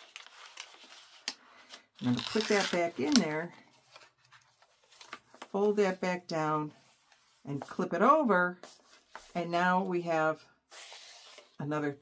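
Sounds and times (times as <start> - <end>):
paper rustling: 0.0 - 6.0, 8.6 - 9.6, 10.7 - 11.6.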